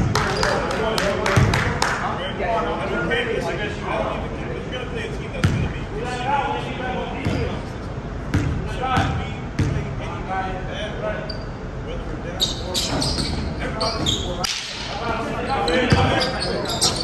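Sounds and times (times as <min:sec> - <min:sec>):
voices chattering in echoing hall: 0:00.0 - 0:17.0
basketball bouncing on gym floor: 0:08.3 - 0:09.8, 0:15.9 - 0:17.0.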